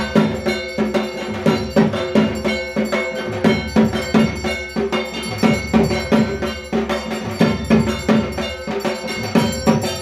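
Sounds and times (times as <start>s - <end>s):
drum beats: 0.0s - 10.0s
struck bells ringing: 0.0s - 10.0s.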